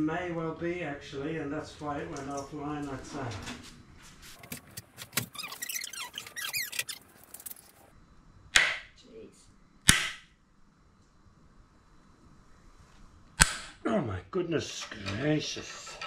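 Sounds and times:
clicking and scraping: 4.4 - 7.8.

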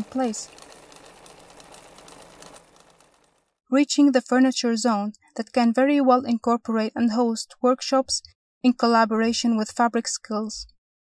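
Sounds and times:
sewing machine stitching clatter: 0.0 - 3.6.

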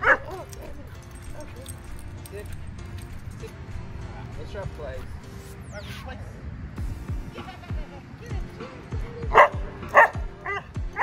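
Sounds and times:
dog barking sharply: 9.3 - 11.0.

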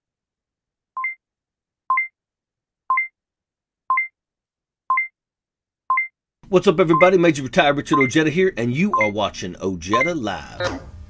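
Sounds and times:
two-tone countdown timer beeps: 1.0 - 1.2, 1.9 - 2.2, 2.9 - 3.1, 3.9 - 4.2, 4.9 - 5.1, 5.9 - 6.2, 6.8 - 7.2, 7.9 - 8.2, 8.9 - 9.2, 9.9 - 10.3.

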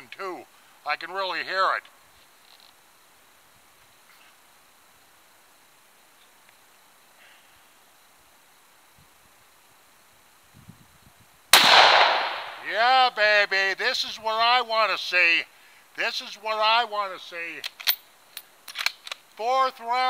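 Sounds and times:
rifle shot: 11.5 - 12.8.

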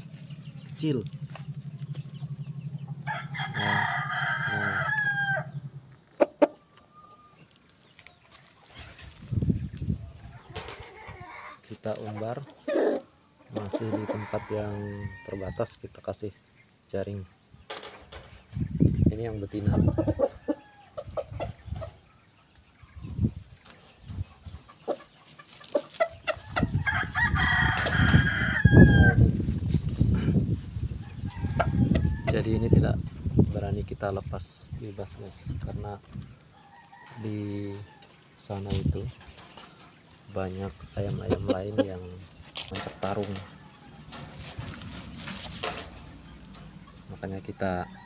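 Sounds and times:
low rumble: 0.0 - 6.2
rooster crowing: 3.0 - 5.7, 13.7 - 15.6, 26.6 - 29.4, 43.4 - 44.3, 47.7 - 48.0
rooster pecking and scratching dirt: 24.8 - 28.4, 41.0 - 47.1.

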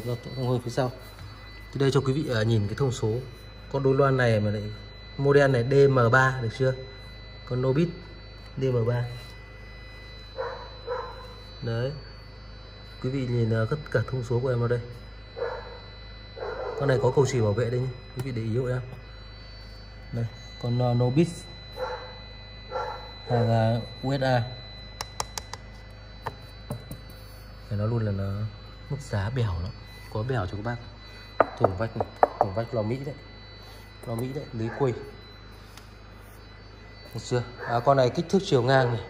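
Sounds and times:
faint steady hum: 0.0 - 39.0
dog barking: 10.4 - 11.3, 15.4 - 15.8, 16.4 - 16.8, 21.8 - 23.1.

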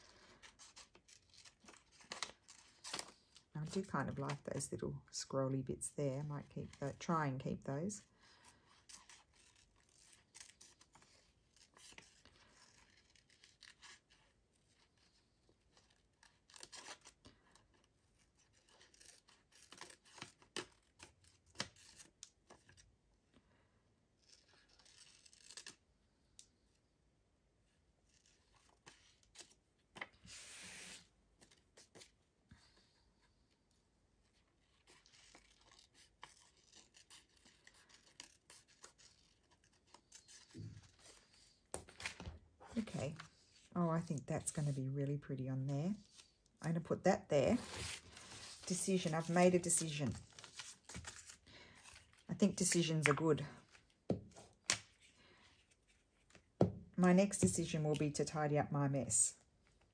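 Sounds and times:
scissors snipping paper: 34.8 - 41.2
paper rustling: 47.5 - 56.5.

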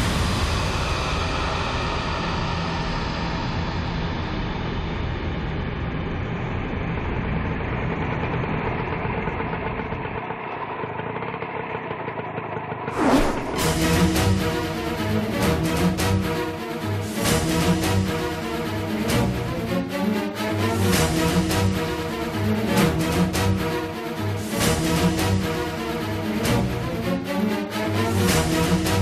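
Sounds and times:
engine-like rumble: 0.0 - 29.0
short whoosh: 12.9 - 14.8.

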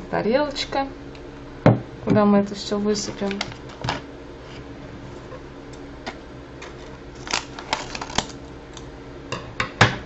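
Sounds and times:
packet crinkling: 6.6 - 8.9.

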